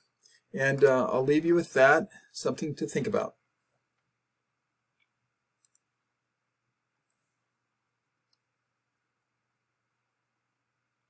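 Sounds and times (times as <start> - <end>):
computer mouse clicks: 5.0 - 5.9, 8.2 - 8.5.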